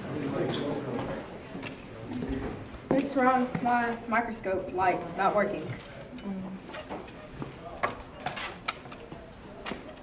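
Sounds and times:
faint classroom voices: 0.0s - 10.0s.

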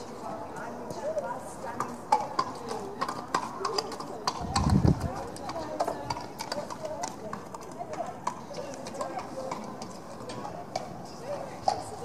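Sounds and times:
faint voices murmuring: 0.0s - 12.0s
horse hoofbeats at a trot: 0.0s - 12.0s.

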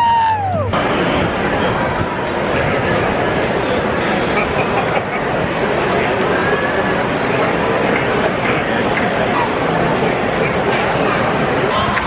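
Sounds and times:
girl's high-pitched cheering yell: 0.0s - 0.8s
stadium crowd noise: 0.0s - 12.0s.

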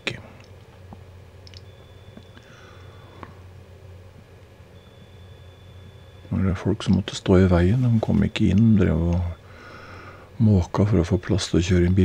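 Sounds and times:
faint low hum: 0.0s - 12.0s
soft clicks: 0.4s - 2.5s, 8.1s - 9.3s.

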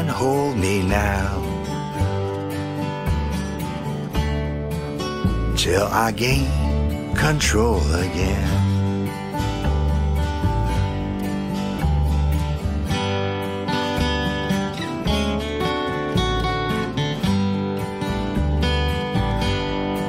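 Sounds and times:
low bass notes: 0.0s - 20.0s
strummed acoustic guitar: 0.0s - 20.0s.

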